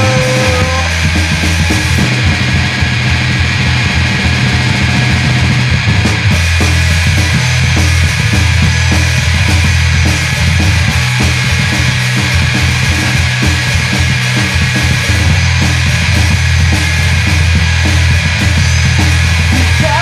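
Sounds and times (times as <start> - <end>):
loud punk rock band playing: 0.0 - 20.0.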